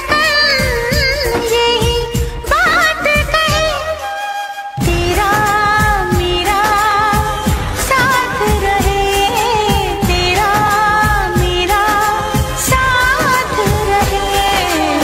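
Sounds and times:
person singing a romantic song: 0.0s - 15.0s.

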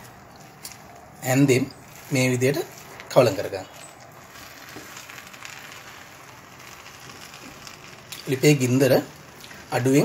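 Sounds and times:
food sizzling in a pan: 1.5s - 10.0s.

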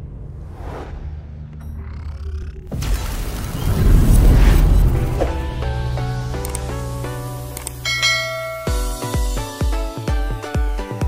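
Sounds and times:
intro music: 4.9s - 11.0s
bass-heavy electronic beat: 5.5s - 11.0s
bell-like notification chime: 7.8s - 9.7s.

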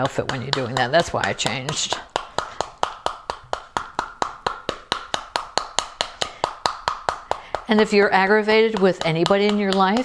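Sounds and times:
wooden mallet tapping pomegranate: 0.0s - 10.0s.

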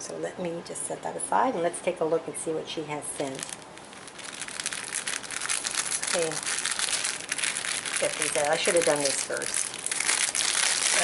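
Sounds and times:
plastic bag crinkling: 3.1s - 11.0s.

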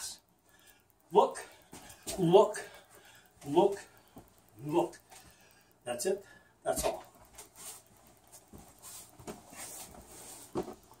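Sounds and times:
footsteps on wooden floor: 8.4s - 10.9s.

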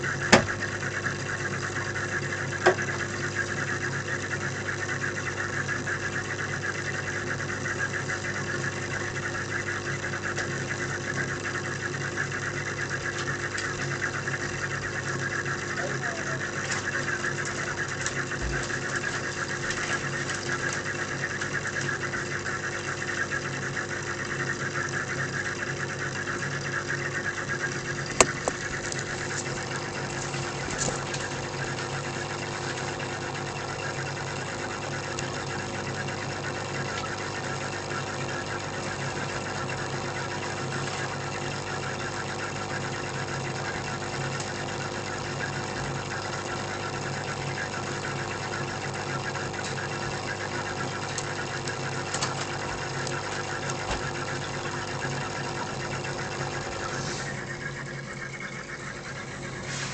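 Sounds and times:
water bubbling: 0.0s - 59.7s
aquarium pump humming: 0.0s - 59.9s.

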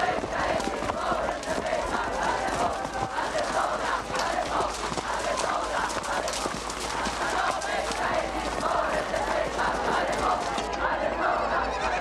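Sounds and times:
horse hooves clip-clopping: 0.0s - 10.8s
crowd murmur: 0.0s - 12.0s.

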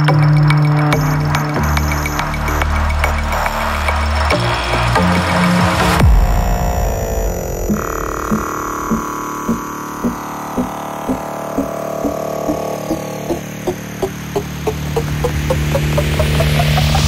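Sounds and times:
deep bass: 6.0s - 17.0s
sustained synth pad: 6.3s - 17.0s
rising noise sweep: 7.5s - 17.0s
repeating synth note climbing: 7.7s - 17.0s.

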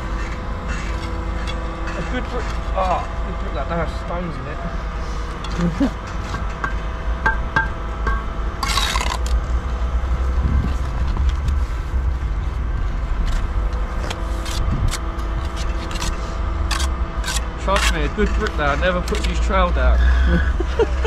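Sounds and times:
steady low drone: 0.0s - 21.0s
trowel scraping mortar: 8.6s - 9.4s, 14.0s - 19.5s.

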